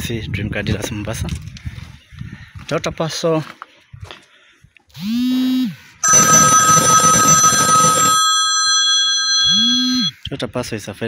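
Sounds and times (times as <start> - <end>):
telephone bell ringing: 6.0 - 10.1.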